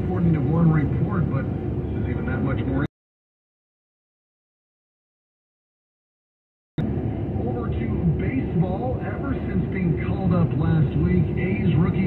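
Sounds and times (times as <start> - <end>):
car road and engine rumble: 0.0 - 2.9, 6.8 - 12.0
voice talking from car radio: 0.0 - 2.9, 7.3 - 12.0.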